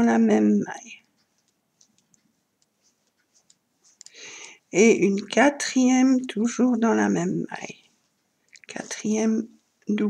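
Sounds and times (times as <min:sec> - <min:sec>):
crochet hook ticking: 0:00.9 - 0:05.4.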